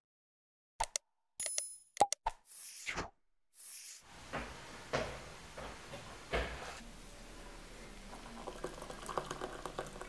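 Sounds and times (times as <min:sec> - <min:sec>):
sharp clicks and pops: 0:00.8 - 0:02.4.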